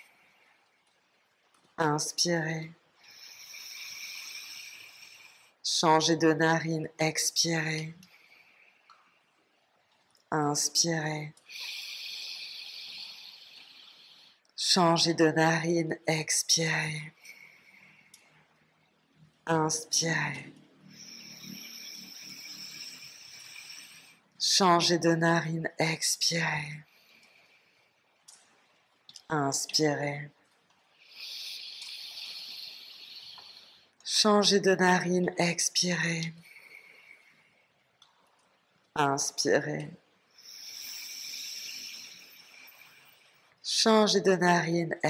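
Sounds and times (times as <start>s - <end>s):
slow nasal inhale: 3.0s - 5.6s, 8.0s - 9.2s, 11.5s - 14.4s, 17.2s - 18.4s, 20.9s - 24.3s, 31.0s - 34.0s, 36.4s - 37.8s, 40.4s - 43.6s.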